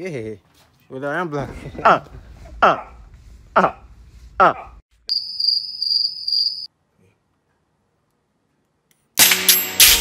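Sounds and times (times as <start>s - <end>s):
cricket chirp trill: 5.1s - 6.7s
music with percussive hits: 9.2s - 10.0s.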